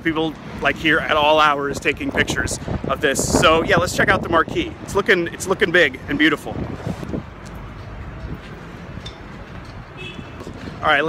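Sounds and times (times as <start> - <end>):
traffic rumble: 0.0 - 11.0
wind noise on microphone: 0.0 - 11.0.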